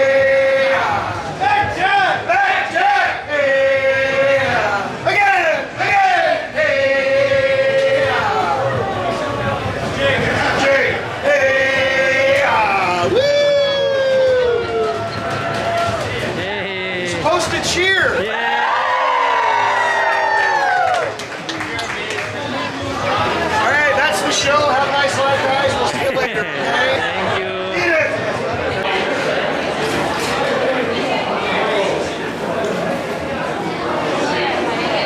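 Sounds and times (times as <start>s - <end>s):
men shouting sing-song calls: 10.1s - 15.0s.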